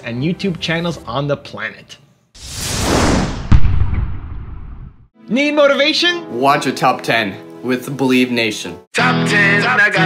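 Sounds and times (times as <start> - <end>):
whoosh: 2.4 - 5.1
deep boom: 2.5 - 5.1.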